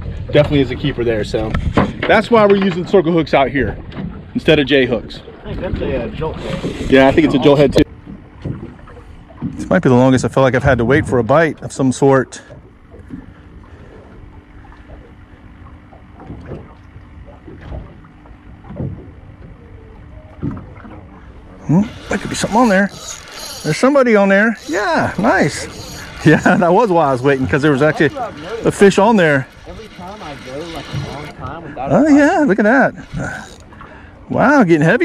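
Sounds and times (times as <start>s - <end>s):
faint steady hum: 4.3s - 35.0s
water slapping against boat hull: 7.8s - 9.8s, 14.6s - 19.6s, 20.3s - 21.2s
person talking: 21.6s - 33.6s.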